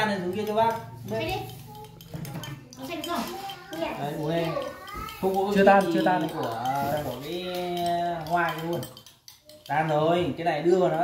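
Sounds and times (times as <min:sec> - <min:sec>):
child talking: 0:01.1 - 0:05.6.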